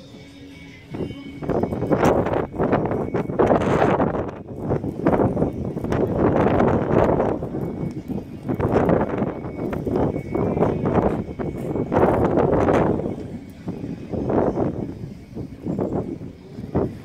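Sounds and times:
wind buffeting microphone: 0.8 - 17.0.

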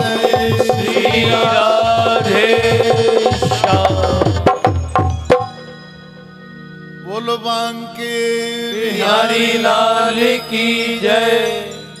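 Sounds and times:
steady held drone: 0.0 - 4.4
man singing devotional song: 0.0 - 5.0, 7.0 - 12.0.

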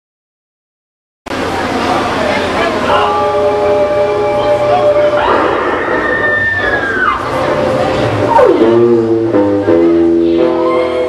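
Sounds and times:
sustained music chord: 2.6 - 6.0, 7.2 - 11.0
high note sliding down: 2.9 - 11.0.

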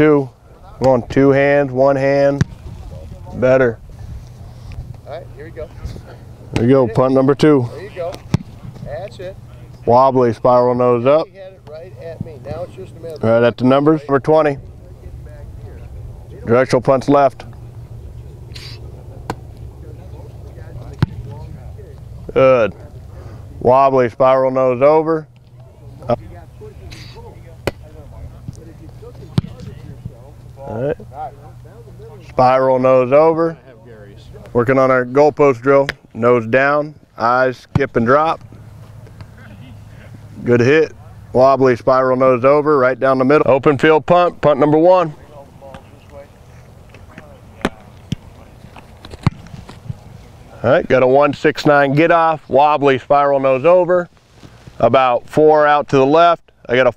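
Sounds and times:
faint distant voices: 0.0 - 54.1
foot kicking football thud: 2.4 - 2.7.

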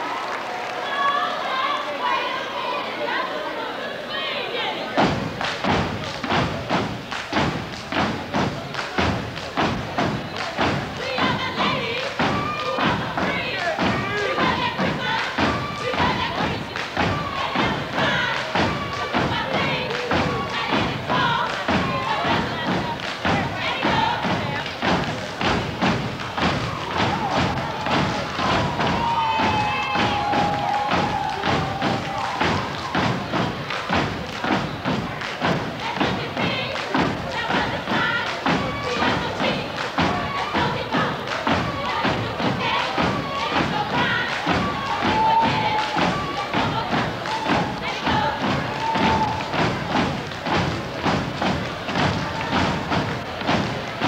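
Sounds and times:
stomping and clapping: 0.0 - 1.8, 4.8 - 54.0
voices chanting: 0.8 - 54.0.

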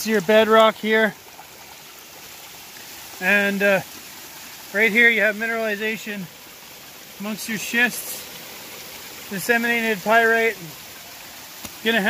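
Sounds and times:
creek running over rocks: 0.0 - 12.0.

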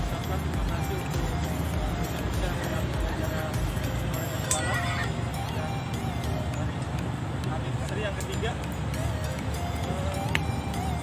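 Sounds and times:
music playing: 0.0 - 11.0.

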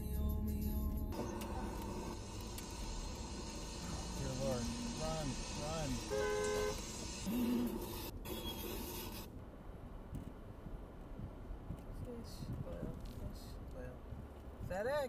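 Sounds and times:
car road and cabin noise: 0.0 - 15.0
car horn toot: 5.6 - 7.5.

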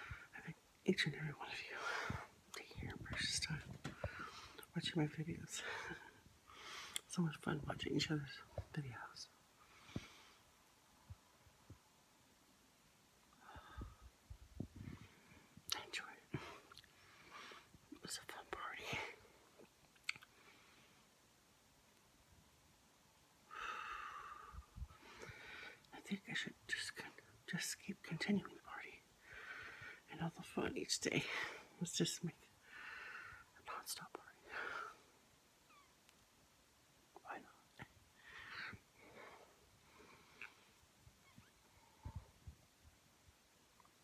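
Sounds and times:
woman whispering: 0.1 - 6.2, 7.0 - 9.4, 15.7 - 16.7, 17.9 - 19.3, 25.9 - 29.1, 30.0 - 32.5, 33.5 - 34.9, 37.1 - 38.0
mouth clicks: 20.0 - 20.3.

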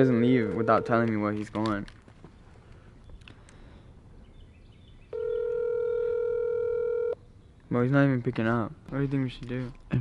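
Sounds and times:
telephone ringback tone: 0.2 - 1.0, 5.2 - 7.2.

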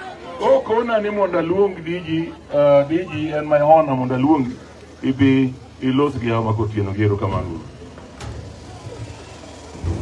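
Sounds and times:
faint crowd voices: 0.0 - 10.0.

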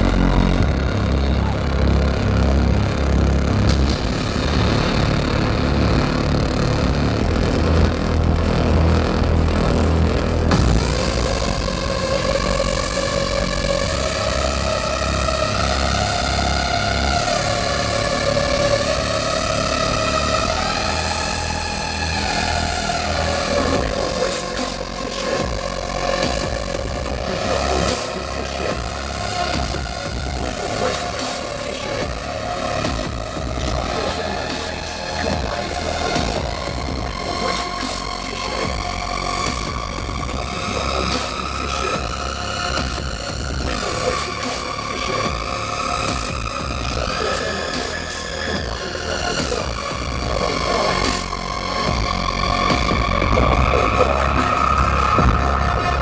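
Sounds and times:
gliding synth melody: 0.0 - 56.0
kick and bass beat: 0.0 - 56.0.

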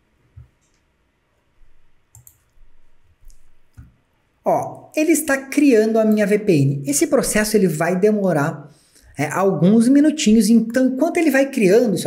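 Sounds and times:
computer mouse clicks: 2.1 - 4.0.

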